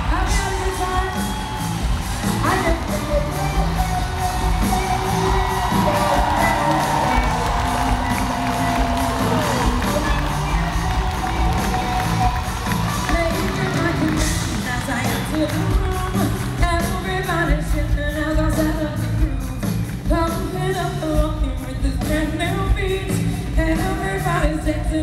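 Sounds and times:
crowd cheering and shouting: 0:00.0 - 0:17.8
live rock band playing: 0:00.0 - 0:25.0.

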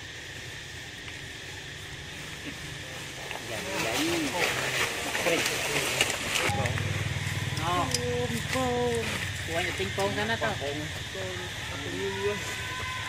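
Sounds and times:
macaques cooing: 0:01.4 - 0:13.0
steady low drone: 0:06.3 - 0:11.8.

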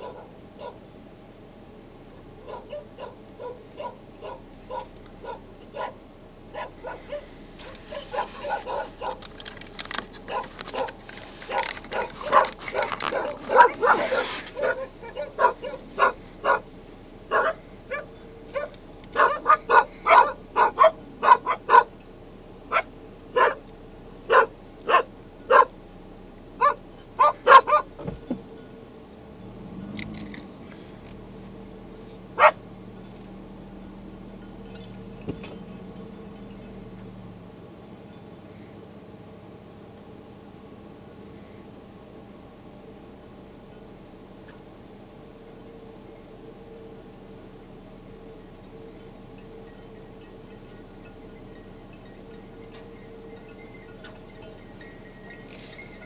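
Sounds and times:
dogs barking: 0:00.0 - 0:00.8, 0:02.4 - 0:09.5, 0:10.2 - 0:22.0, 0:22.7 - 0:25.8, 0:26.6 - 0:28.0, 0:32.4 - 0:32.6.

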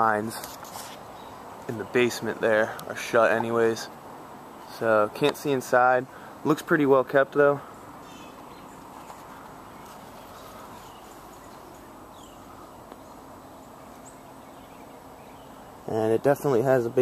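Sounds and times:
faint bird chirps: 0:07.6 - 0:15.9.

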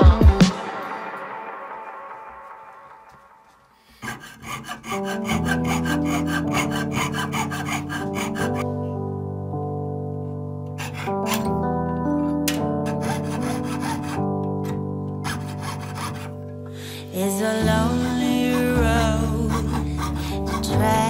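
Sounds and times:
background music: 0:00.0 - 0:21.0
saw cutting metal strip: 0:03.9 - 0:08.7, 0:10.8 - 0:11.6, 0:12.5 - 0:16.4, 0:17.9 - 0:21.0.

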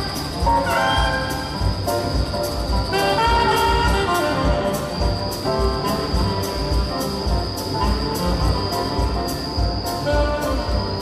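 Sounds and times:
drums with cymbal strikes: 0:00.0 - 0:11.0
saxophone melody: 0:00.0 - 0:11.0.

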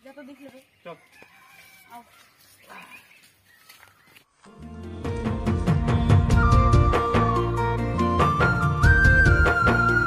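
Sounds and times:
chicken crowing: 0:01.0 - 0:02.4.

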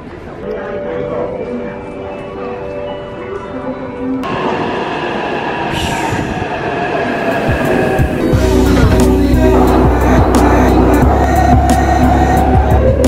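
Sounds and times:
train pulling into platform: 0:00.0 - 0:13.0
deep train rumble: 0:04.2 - 0:13.0
wheels squealing: 0:07.7 - 0:12.6.

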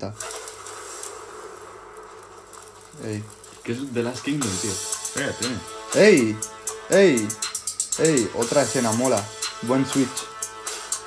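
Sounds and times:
wind and rain hiss: 0:00.0 - 0:05.0.

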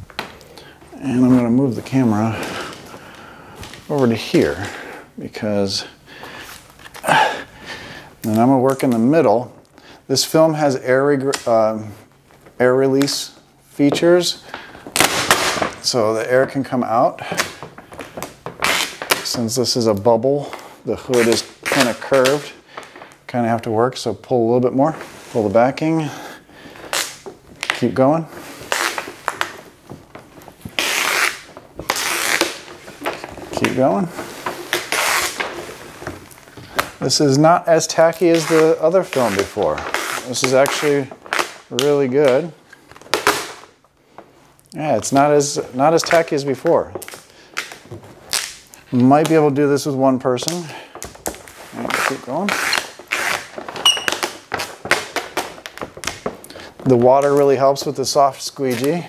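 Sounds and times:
liner peeled off vinyl film: 0:10.3 - 0:44.3, 0:45.0 - 0:59.0
plastic film rasp: 0:17.2 - 0:19.4, 0:26.5 - 0:37.0, 0:38.1 - 0:41.9, 0:50.4 - 0:57.4.

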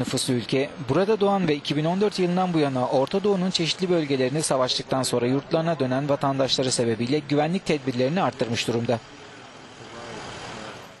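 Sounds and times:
street background noise: 0:00.0 - 0:11.0.

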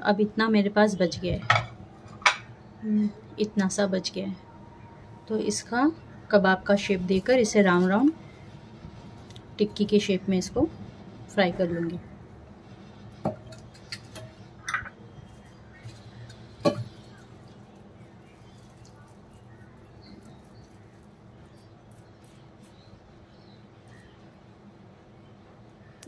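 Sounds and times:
knocks and clinks on steel bowl: 0:14.6 - 0:14.9
hands shaping meat patty: 0:15.3 - 0:23.3.

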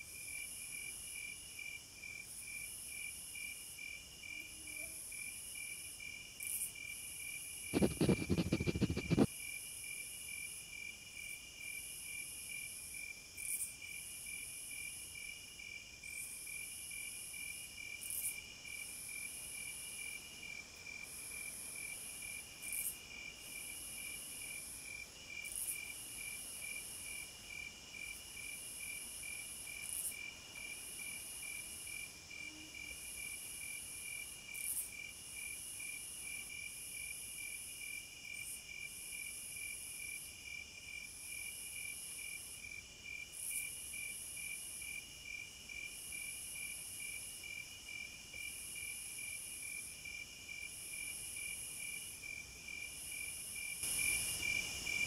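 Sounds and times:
insects chirping in a fast trill: 0:00.2 - 0:55.0
burst of rapid knocks: 0:07.8 - 0:09.3
higher insect call: 0:07.8 - 0:09.3, 0:50.6 - 0:55.0.

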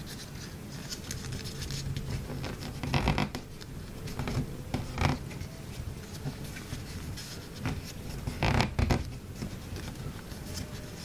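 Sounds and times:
paper rustling and crinkling: 0:00.0 - 0:11.0
sharp paper crackles: 0:00.0 - 0:11.0.

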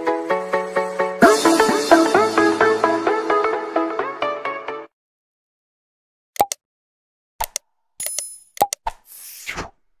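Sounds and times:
short pops and clicks: 0:06.4 - 0:06.6, 0:07.4 - 0:09.7.

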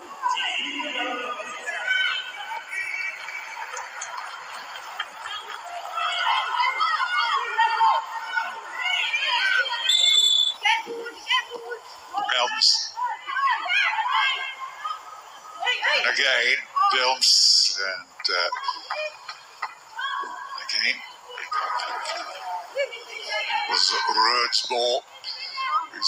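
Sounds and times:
voices calling out and chattering: 0:00.0 - 0:26.0.

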